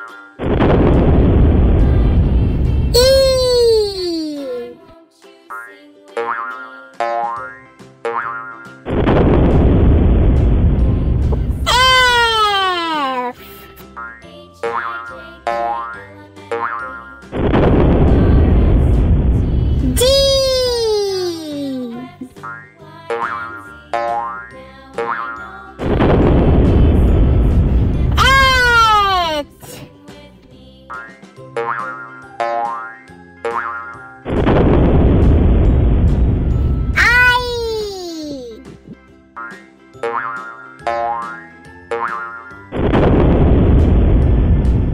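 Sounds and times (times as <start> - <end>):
cartoon explosion with deep rumble: 0.4 - 3.8, 8.9 - 12.3, 17.4 - 20.7, 25.8 - 29.4, 34.3 - 37.7, 42.7 - 44.9
children's music: 1.3 - 8.2, 10.8 - 34.0, 36.5 - 40.2
cartoon springy boings: 6.2 - 8.8, 22.4 - 25.4, 28.2 - 29.4, 31.0 - 34.1, 39.4 - 42.5.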